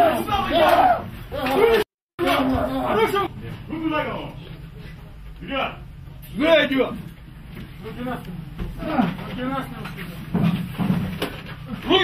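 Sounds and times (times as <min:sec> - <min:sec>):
men calling out commands: 0:00.0 - 0:04.4.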